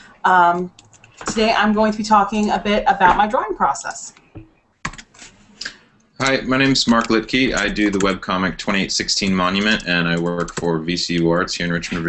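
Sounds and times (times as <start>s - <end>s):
faint room noise: 0.0s - 12.0s
keyboard keystrokes: 4.8s - 5.1s, 6.6s - 8.2s, 9.6s - 10.7s.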